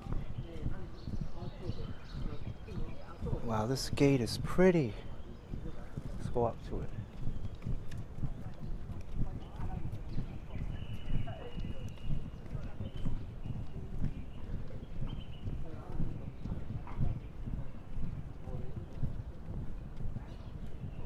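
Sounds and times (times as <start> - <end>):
footsteps on asphalt: 0.0 - 21.0.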